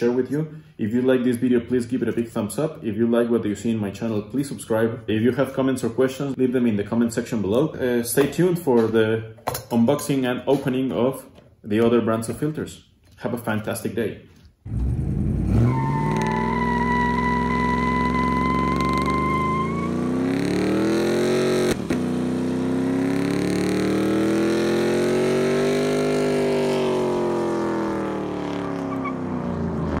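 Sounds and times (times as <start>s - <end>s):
pickup engine revving high: 14.7s - 30.0s
tyre squeal: 15.5s - 20.0s, 28.6s - 29.2s.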